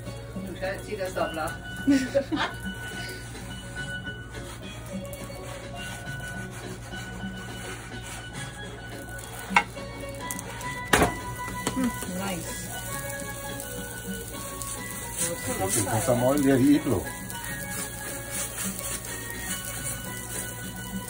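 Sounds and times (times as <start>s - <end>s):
faint music: 0.0s - 21.0s
faint sizzle on hot griddle: 0.0s - 21.0s
wooden paddle knocking on griddle: 9.4s - 12.0s.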